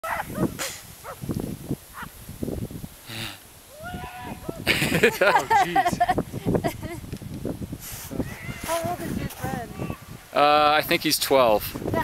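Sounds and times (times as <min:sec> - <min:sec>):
person laughing in yelps: 0:04.5 - 0:07.0
brief hiss: 0:07.8 - 0:08.7.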